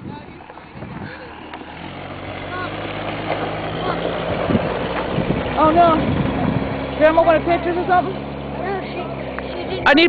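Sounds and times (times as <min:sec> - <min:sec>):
pickup truck engine humming: 0:00.0 - 0:10.0.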